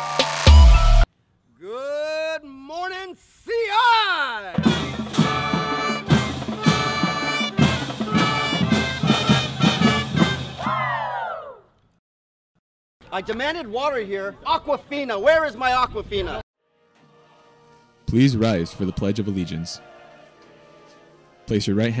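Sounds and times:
brass band with drums playing: 0:04.5 - 0:10.8.

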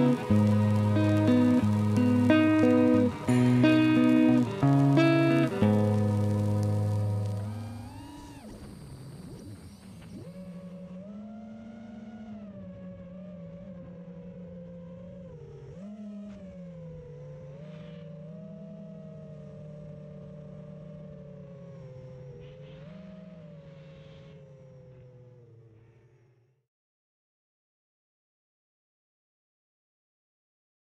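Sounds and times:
drone propellers whining: 0:00.0 - 0:25.0.

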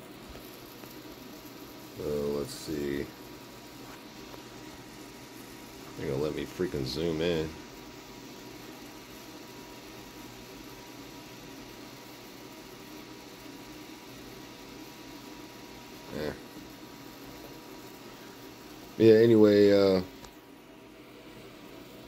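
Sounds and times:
tesla coil hissing: 0:00.0 - 0:22.0.

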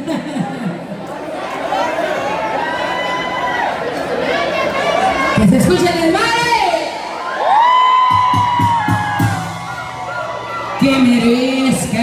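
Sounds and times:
crowd whooping: 0:01.7 - 0:04.0, 0:07.1 - 0:12.0
loud live banda music: 0:05.2 - 0:12.0.

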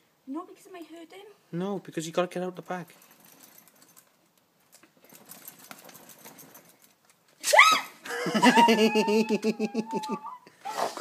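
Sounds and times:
bag rustling: 0:04.9 - 0:07.0
person shrieking: 0:07.4 - 0:11.0.

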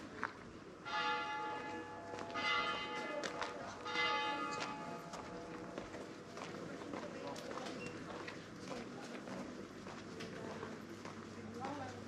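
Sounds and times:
church bell ringing: 0:00.8 - 0:06.0.

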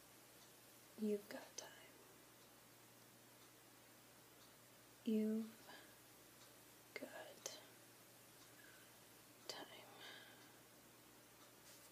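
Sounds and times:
woman breathing softly: 0:09.6 - 0:10.7.

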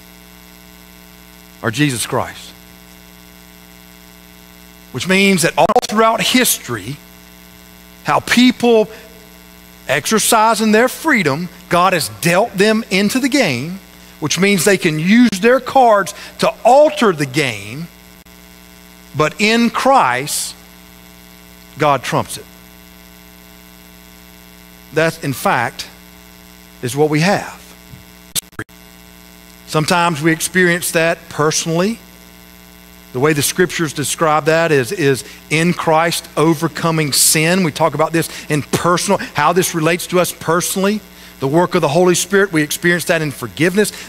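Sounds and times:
faint buzzing tones: 0:00.0 - 0:40.1
electrical mains hum: 0:00.0 - 0:44.0.

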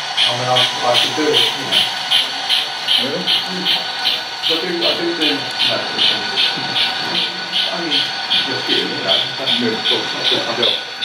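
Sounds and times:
model steam locomotive chuffing: 0:00.0 - 0:11.0.

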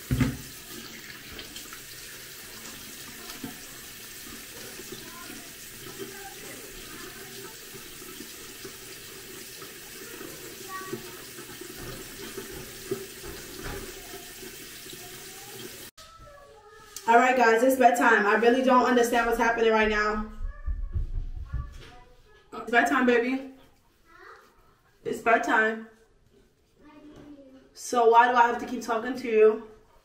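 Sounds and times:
sink tap running: 0:00.0 - 0:15.9
thump: 0:00.1 - 0:00.4.

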